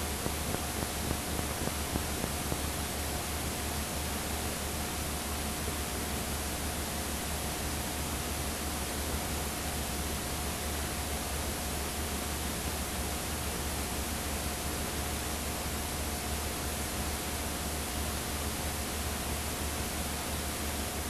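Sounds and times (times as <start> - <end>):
steady hiss: 0.0 - 3.5.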